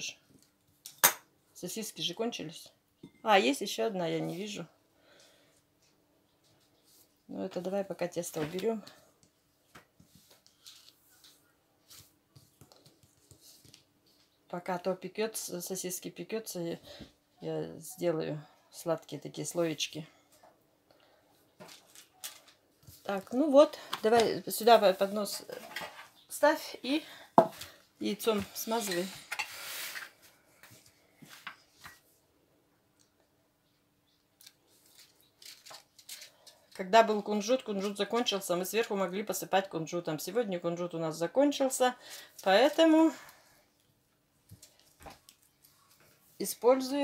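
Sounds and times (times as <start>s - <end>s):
soft rustles and taps: 8.3s - 14.3s
baking paper rustling: 21.6s - 26.1s.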